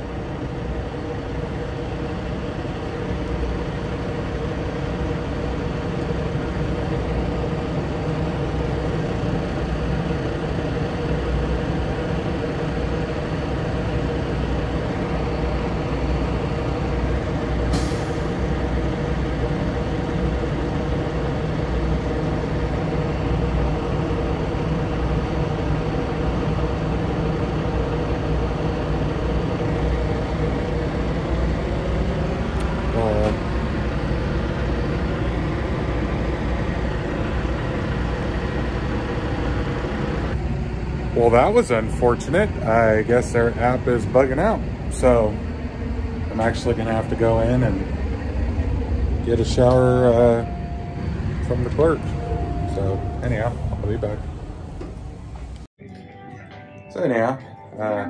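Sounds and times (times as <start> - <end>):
diesel truck engine idling: 0.0 - 55.7.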